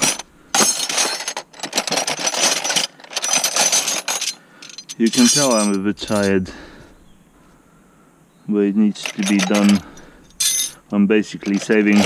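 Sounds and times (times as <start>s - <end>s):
metal spanners clinking: 0.0s - 6.5s, 8.9s - 12.0s.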